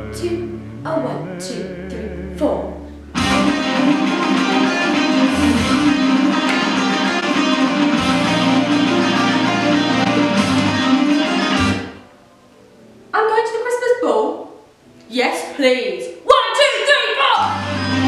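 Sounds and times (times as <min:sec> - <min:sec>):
strummed guitar music with bass: 0:01.5 - 0:12.0.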